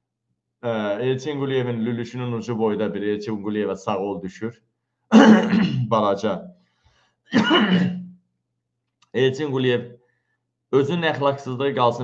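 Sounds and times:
man clearing his throat: 5.1s - 6.0s, 7.3s - 8.1s.

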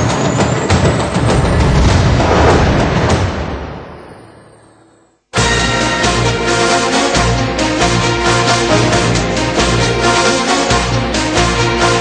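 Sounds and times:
deep rumble: 1.1s - 4.0s
high rising sweep: 1.2s - 3.7s.

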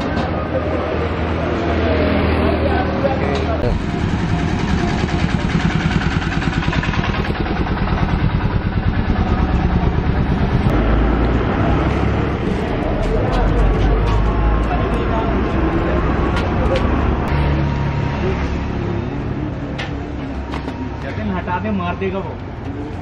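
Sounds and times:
vehicle engine idling: 3.6s - 10.8s.

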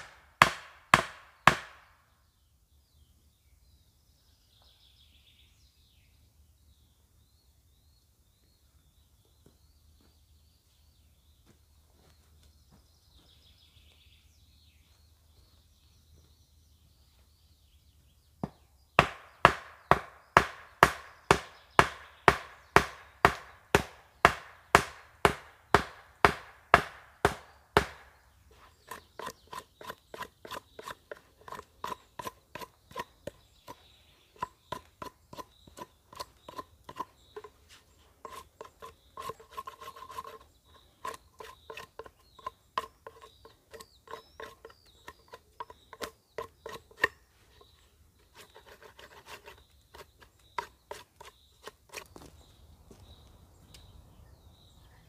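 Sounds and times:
hatchet chopping wooden stake: 0.0s - 1.9s, 18.4s - 28.2s, 41.0s - 47.2s
knife shaving wood: 28.8s - 33.8s, 34.4s - 47.1s, 48.3s - 52.2s.

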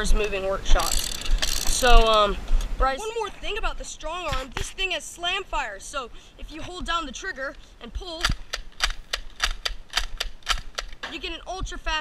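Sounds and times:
toy blaster plastic clacks: 0.8s - 1.9s, 8.2s - 11.2s.

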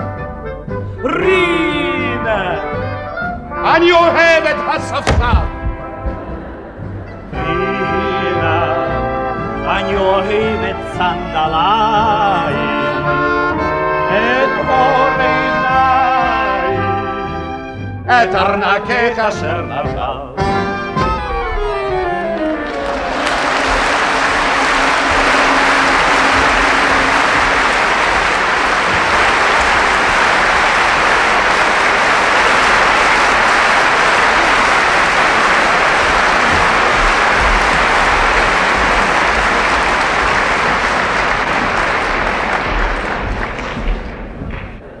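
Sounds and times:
audience applauding: 21.4s - 44.8s.

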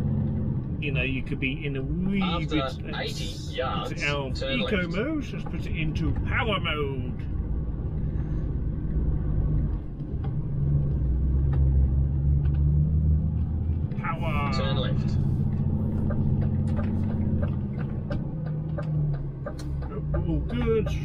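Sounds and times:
truck diesel engine droning: 0.0s - 21.0s.

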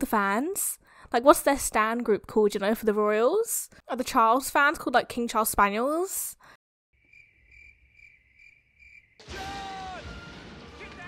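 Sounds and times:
crickets chirping: 7.0s - 9.2s.

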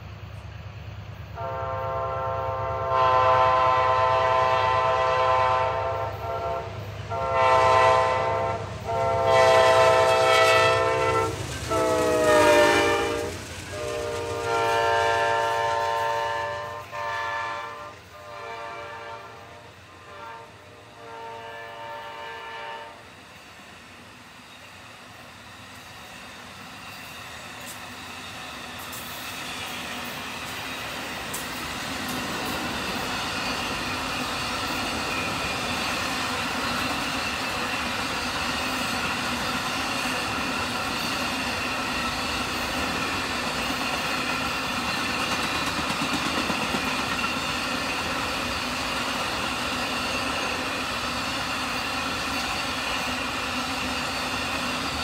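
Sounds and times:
train cars rumbling and clacking: 0.0s - 55.0s
locomotive horn blasts: 1.4s - 23.0s.

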